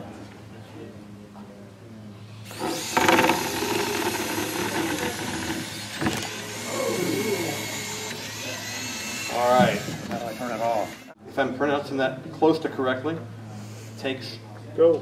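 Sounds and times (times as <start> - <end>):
small electric gear motors whining: 2.4 - 11.2, 13.5 - 14.4.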